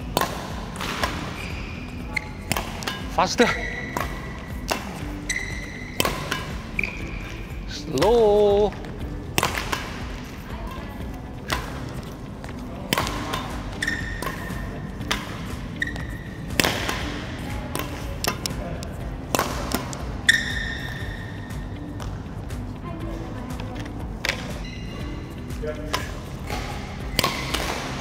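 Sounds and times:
badminton racket hitting shuttlecock: 0.0 - 8.2, 8.8 - 10.5, 11.4 - 18.6, 19.2 - 22.3, 23.8 - 24.7, 25.8 - 28.0
shoes squeaking on court floor: 0.0 - 28.0.

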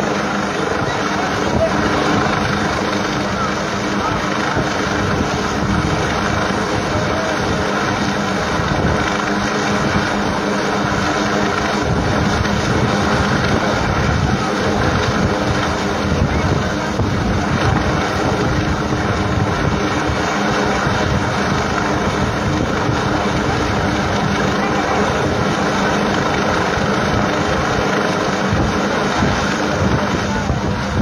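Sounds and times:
helicopter hovering: 0.0 - 31.0
wind on microphone: 0.0 - 31.0.

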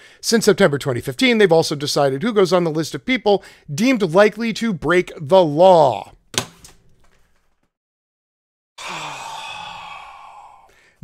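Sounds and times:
man sighing heavily: 8.8 - 11.0.

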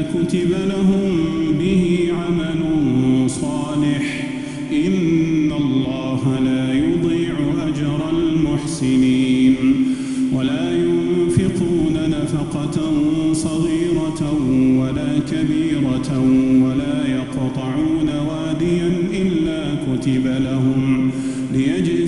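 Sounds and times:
man chanting recitation: 0.0 - 22.0.

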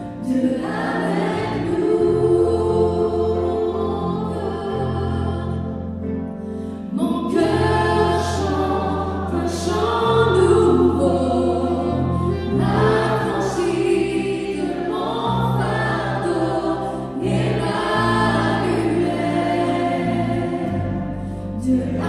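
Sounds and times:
choir singing gospel song: 0.0 - 6.0, 6.9 - 22.0
keyboard accompaniment: 0.0 - 22.0.

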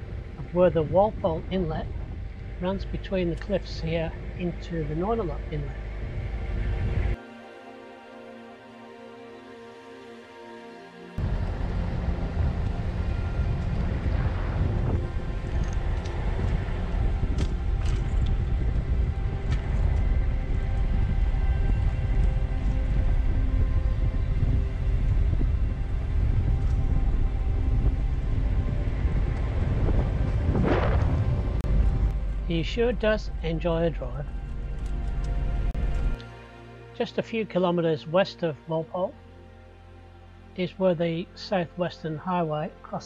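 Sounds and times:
road rumble: 11.2 - 36.2
wind buffeting microphone: 11.2 - 36.2.

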